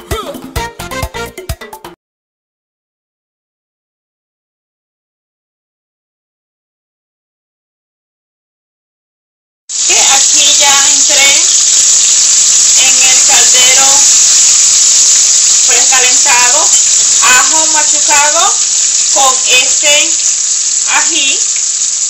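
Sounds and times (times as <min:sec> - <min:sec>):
vegetables sizzling in oil: 0:09.7 - 0:22.0
person speaking: 0:09.9 - 0:11.6, 0:12.7 - 0:14.4, 0:15.6 - 0:21.6.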